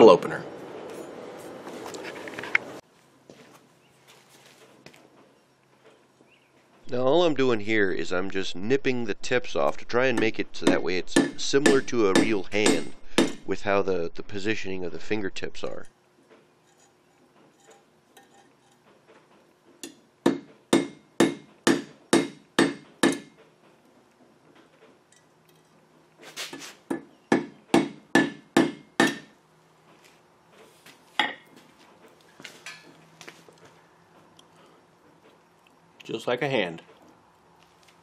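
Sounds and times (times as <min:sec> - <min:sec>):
hammer striking steel on anvil: 0:10.1 - 0:13.5, 0:19.8 - 0:23.4, 0:26.9 - 0:29.4.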